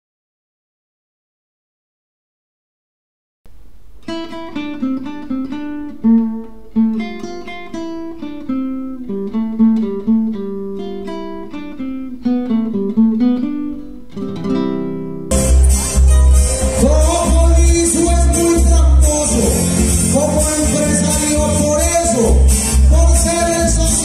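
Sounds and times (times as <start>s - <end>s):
acoustic guitar picking: 3.5s - 24.0s.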